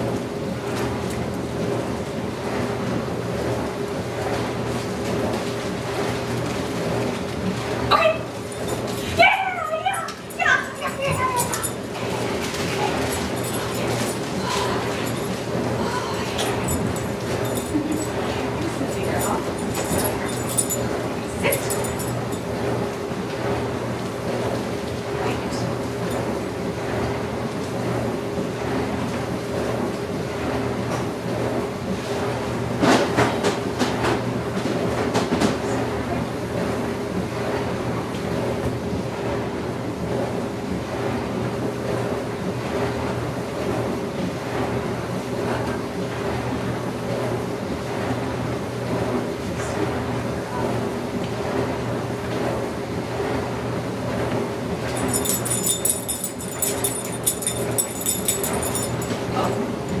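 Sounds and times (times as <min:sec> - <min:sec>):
steady low hum: 0:00.0 - 0:32.7, 0:38.4 - 1:00.0.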